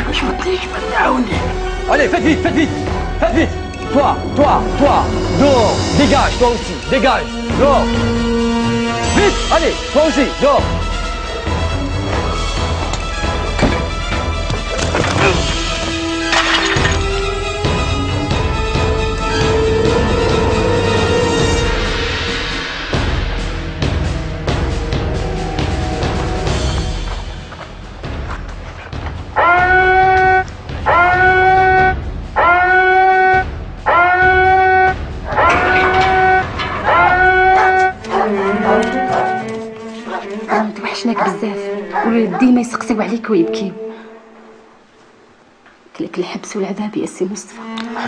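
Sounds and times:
film trailer music: 0:00.0 - 0:48.0.

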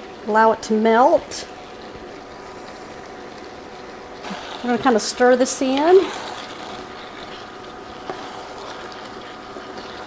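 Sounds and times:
food bubbling in a skillet: 0:00.0 - 0:10.0
wooden spatula stirring: 0:04.2 - 0:10.0.

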